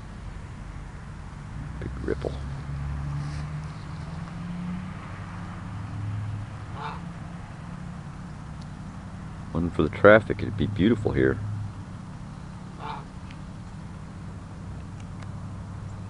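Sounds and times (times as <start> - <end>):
distant road traffic drone: 0.0 - 16.0
short calls: 6.7 - 7.2, 12.3 - 13.9.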